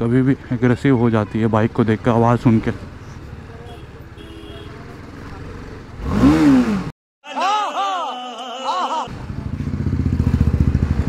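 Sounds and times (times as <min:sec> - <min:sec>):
motorcycle engine idling: 0:02.7 - 0:05.9, 0:09.1 - 0:11.0.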